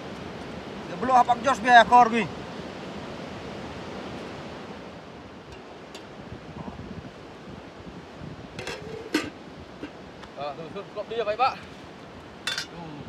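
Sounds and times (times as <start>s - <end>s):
wind: 0.0s - 13.0s.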